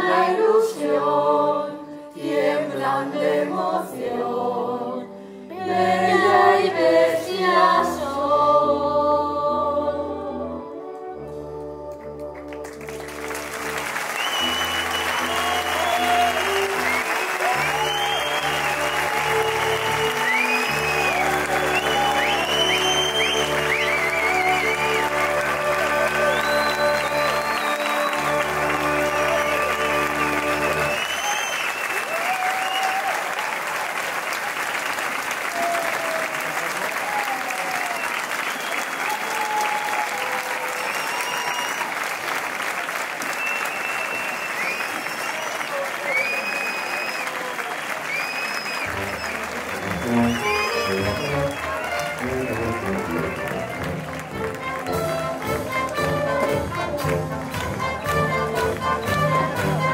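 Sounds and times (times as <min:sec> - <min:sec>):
pit band playing closing chords: 0:11.4 - 0:31.1, 0:48.9 - 0:59.9
audience applauding: 0:11.9 - 0:59.9.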